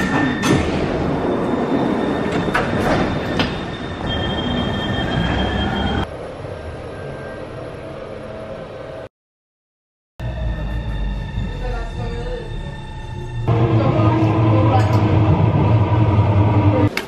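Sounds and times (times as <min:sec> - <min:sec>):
high wheel squeal: 0:00.0 - 0:06.1
metro train rumbling on rails: 0:00.0 - 0:09.1, 0:10.2 - 0:17.0
steady hum: 0:13.5 - 0:16.9.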